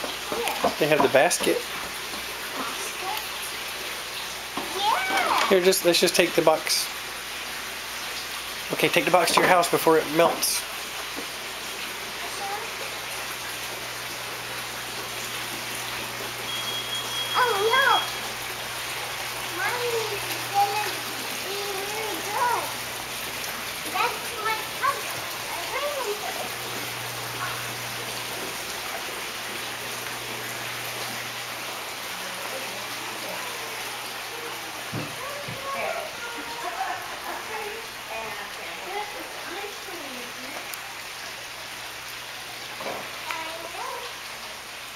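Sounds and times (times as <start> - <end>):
distant children calling out: 17.0 - 18.4, 33.1 - 38.0.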